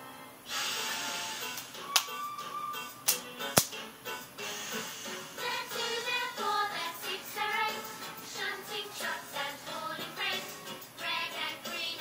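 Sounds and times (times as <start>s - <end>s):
children's tv music through speakers: 0.0s - 12.0s.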